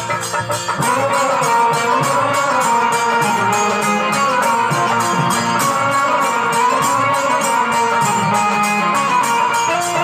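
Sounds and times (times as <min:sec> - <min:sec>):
sustained melody: 0:00.0 - 0:10.0.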